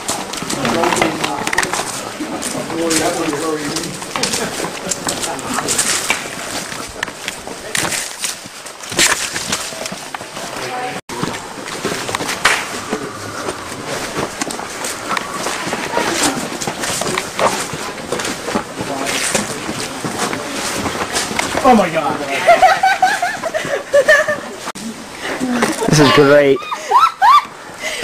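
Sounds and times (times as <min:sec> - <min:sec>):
rustling noise: 0:00.0 - 0:24.8
indistinct voices: 0:09.6 - 0:22.6.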